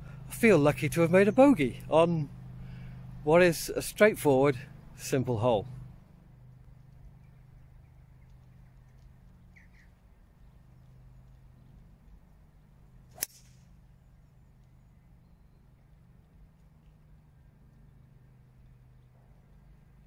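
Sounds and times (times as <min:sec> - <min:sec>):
golf club striking ball: 0:13.1 - 0:13.8.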